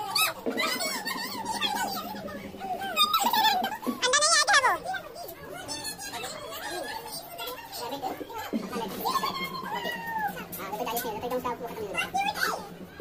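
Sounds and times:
children's voices: 0:00.0 - 0:13.0
people chattering: 0:00.0 - 0:13.0.

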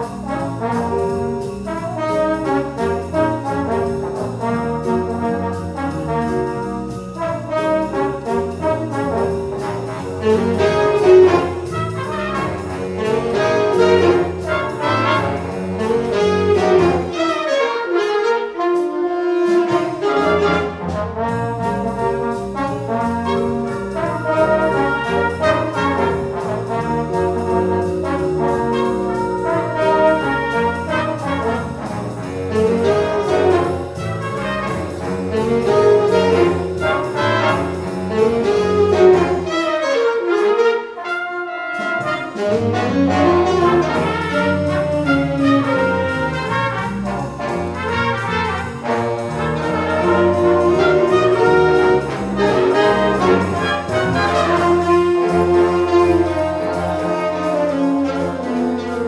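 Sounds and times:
jazz band playing swing: 0:00.0 - 0:59.0
saxophones and brass: 0:00.0 - 0:59.0.

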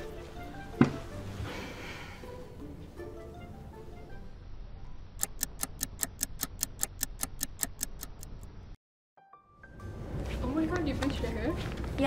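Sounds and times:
clock ticking: 0:05.2 - 0:08.5.

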